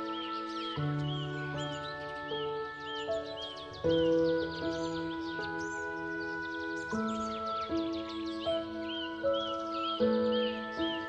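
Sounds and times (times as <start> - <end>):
bird chirping: 0.0 - 11.0
gentle piano music: 0.0 - 11.0.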